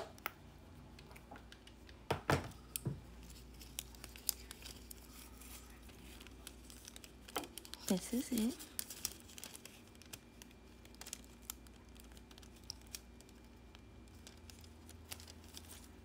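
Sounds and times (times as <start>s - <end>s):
low room hum: 0.0s - 16.0s.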